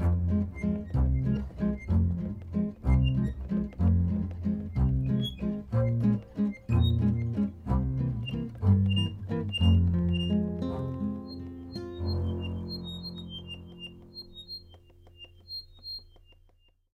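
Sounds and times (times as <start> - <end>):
acoustic guitar: 0.0 - 15.1
double bass: 0.0 - 15.2
accordion: 0.0 - 15.9
short high chirping notes: 8.2 - 16.4.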